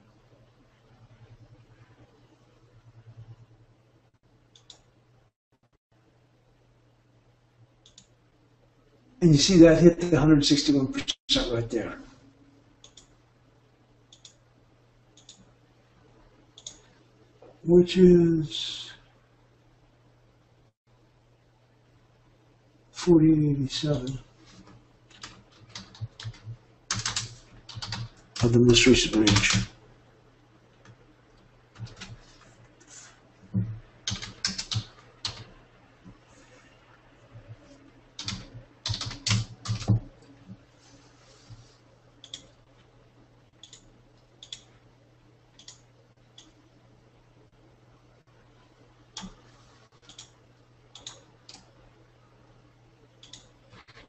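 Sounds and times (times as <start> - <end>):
faint low hum: 0.0 - 54.0
computer mouse clicks: 4.5 - 4.9, 7.8 - 8.2, 12.8 - 13.2, 14.1 - 14.4, 15.2 - 15.5, 16.6 - 16.9, 42.2 - 42.6, 43.6 - 44.7, 45.6 - 46.6, 49.2 - 49.4, 50.0 - 51.8, 53.2 - 54.0
typing on a computer keyboard: 25.1 - 28.5, 29.2 - 29.7, 31.8 - 32.2, 34.0 - 35.5, 38.2 - 40.1, 50.0 - 51.7, 53.2 - 54.0.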